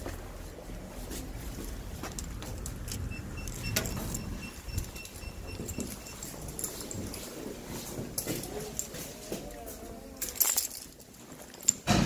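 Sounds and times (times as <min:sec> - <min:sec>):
key fob and door rattling: 0:02.2 - 0:07.4
intercom panel beeping: 0:03.0 - 0:06.6.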